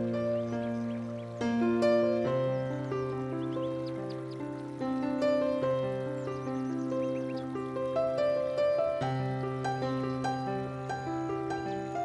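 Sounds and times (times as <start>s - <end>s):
bird chirping: 0.0s - 12.0s
soft piano melody: 0.0s - 12.0s.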